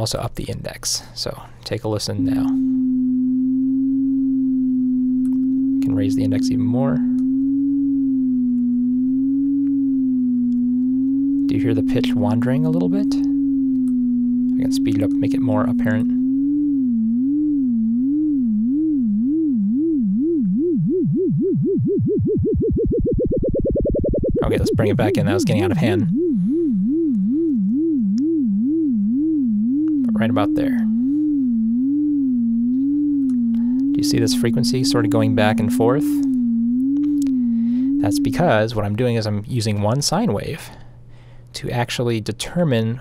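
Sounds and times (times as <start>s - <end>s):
synth sine tone with vibrato: 1.2s - 40.8s.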